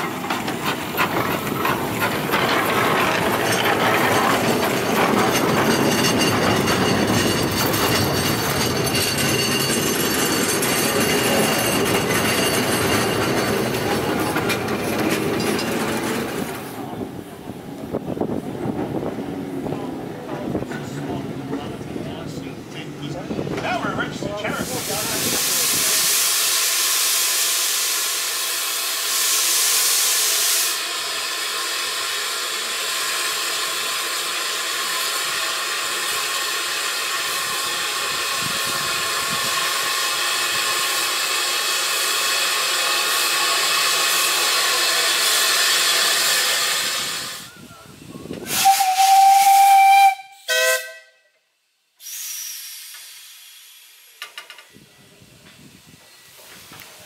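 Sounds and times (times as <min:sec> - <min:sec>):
steam locomotive hissing: 0:00.0 - 0:51.0, 0:51.9 - 0:57.0
steam whistle blast: 0:48.4 - 0:51.3.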